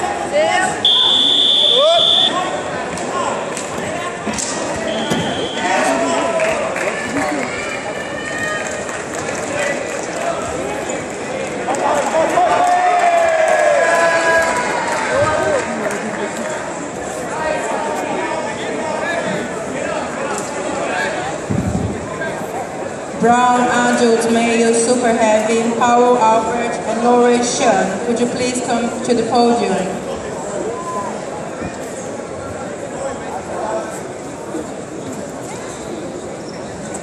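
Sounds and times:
spectators shouting and talking: 0:00.0 - 0:37.0.

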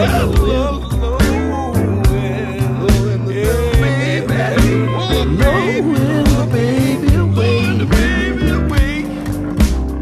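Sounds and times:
pedal steel guitar sliding phrases: 0:00.0 - 0:09.4
steady bass line: 0:00.0 - 0:10.0.

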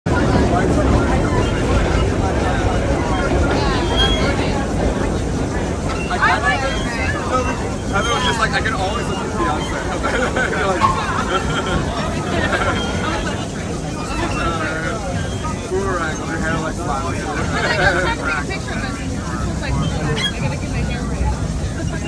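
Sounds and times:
passengers chattering: 0:00.0 - 0:22.0
subway car rumbling: 0:00.0 - 0:22.0.

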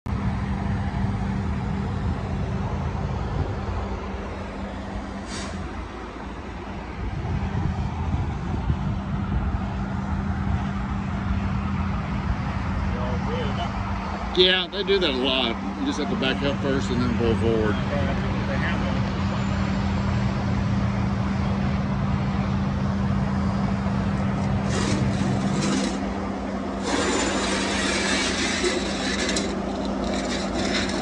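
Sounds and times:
brief hiss: 0:05.2 - 0:05.7.

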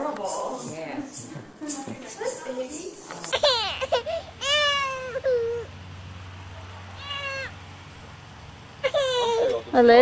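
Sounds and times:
toddler whimpering cry: 0:03.3 - 0:05.7, 0:07.0 - 0:07.5, 0:08.8 - 0:09.7.

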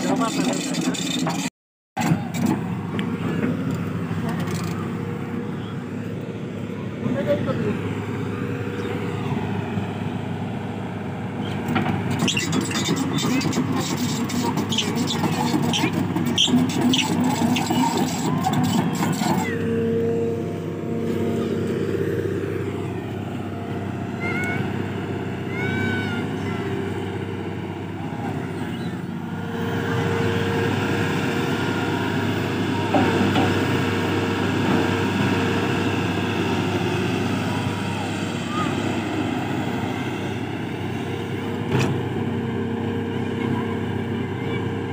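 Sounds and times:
excavator diesel engine running: 0:00.0 - 0:44.9.

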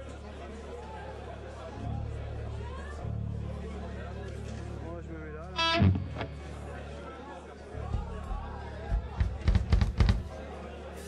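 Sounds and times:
audience chatter: 0:00.0 - 0:11.0
amplifier hum: 0:05.6 - 0:06.6
electric guitar note: 0:05.6 - 0:06.9.

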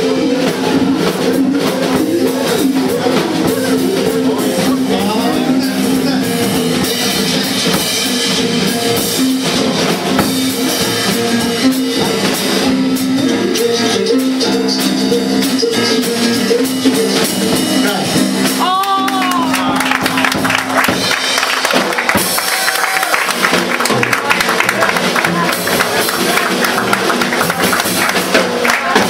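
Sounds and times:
drum kit and cymbals: 0:00.0 - 0:29.0
electric guitar chords: 0:00.0 - 0:29.0.

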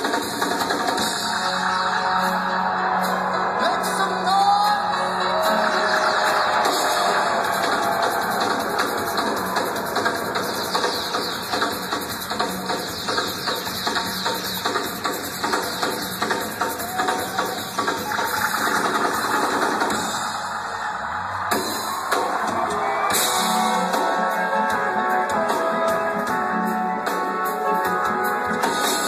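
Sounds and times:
reggae band playing: 0:00.0 - 0:20.4, 0:21.5 - 0:29.0.

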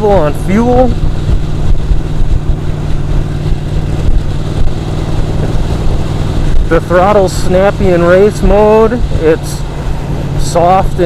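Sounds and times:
motorcycle engine running steadily: 0:00.0 - 0:11.0
wind rumble: 0:00.0 - 0:11.0.

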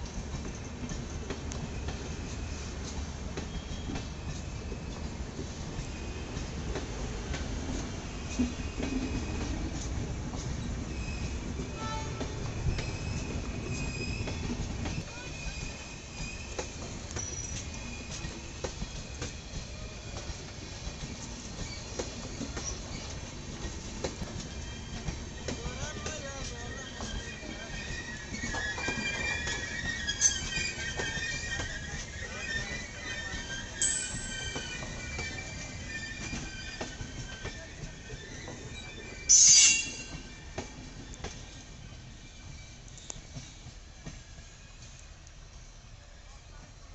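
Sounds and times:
train coaches rumbling: 0:00.0 - 0:46.9
faint wheel squeal: 0:01.7 - 0:05.0, 0:10.9 - 0:19.0, 0:21.6 - 0:23.3, 0:24.4 - 0:43.6
rail joint click: 0:16.5 - 0:27.2, 0:39.3 - 0:41.4
high-pitched metallic squeal: 0:26.6 - 0:40.4.

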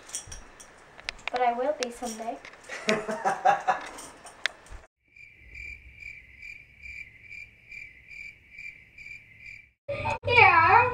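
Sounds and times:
crickets chirping: 0:05.0 - 0:09.8.

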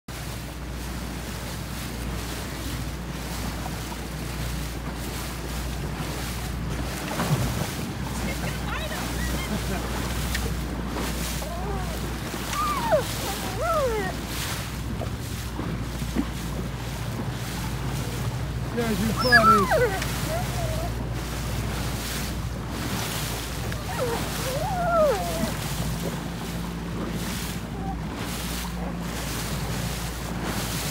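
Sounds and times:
boat motor droning: 0:00.1 - 0:30.9
water wash: 0:00.1 - 0:30.9
wind buffeting microphone: 0:00.3 - 0:30.9.

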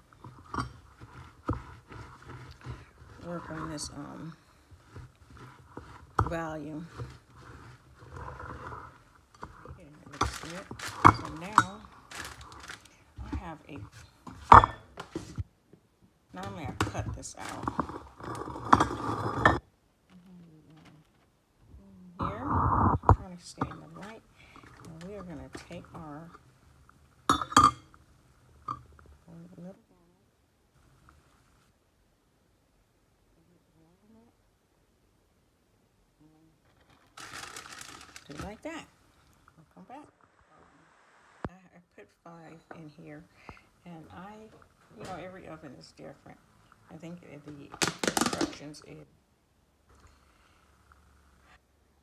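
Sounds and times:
kitchen items clinking: 0:00.0 - 0:15.4, 0:16.4 - 0:19.6, 0:36.8 - 0:38.9, 0:47.5 - 0:48.9
metal spoon stirring dough: 0:00.0 - 0:15.4, 0:16.4 - 0:19.6, 0:23.2 - 0:27.9.

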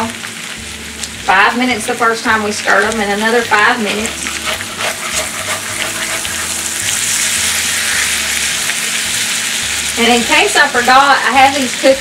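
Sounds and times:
potatoes sizzling in oil: 0:00.0 - 0:12.0
spatula scraping skillet: 0:02.6 - 0:12.0.

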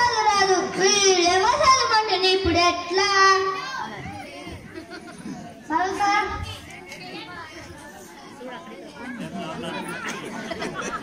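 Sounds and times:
background chatter: 0:00.0 - 0:11.0
boy speaking through a microphone: 0:00.0 - 0:11.0.

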